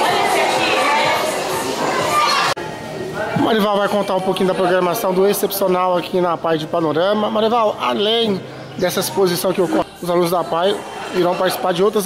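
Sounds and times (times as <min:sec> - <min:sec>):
children chattering and calling out: 0:00.0 - 0:07.0, 0:07.6 - 0:12.0.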